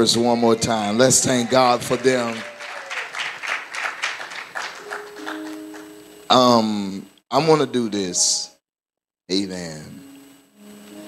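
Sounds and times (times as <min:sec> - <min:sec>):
congregation applause: 0:00.0 - 0:06.0
keyboard sustained notes: 0:04.5 - 0:08.5.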